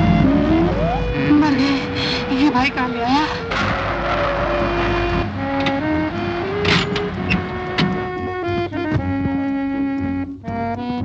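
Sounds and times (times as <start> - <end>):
car engine starting and revving: 0.0 - 9.8
film music: 0.0 - 11.0.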